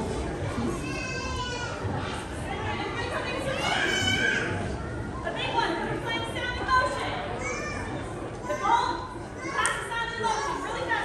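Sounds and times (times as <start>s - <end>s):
children talking and calling out: 0.4s - 5.2s, 7.2s - 11.0s.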